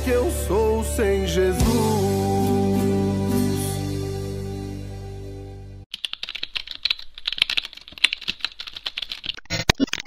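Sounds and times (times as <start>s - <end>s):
background music: 0.0s - 5.8s
computer keyboard typing clicks: 5.9s - 10.0s.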